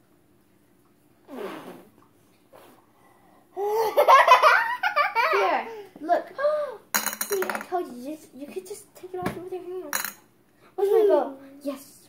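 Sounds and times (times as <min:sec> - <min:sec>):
young child giggling: 0:03.6 - 0:05.5.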